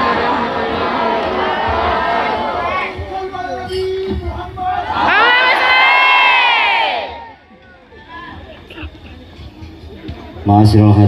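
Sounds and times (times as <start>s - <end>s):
crowd shouting in unison: 0.0s - 9.0s.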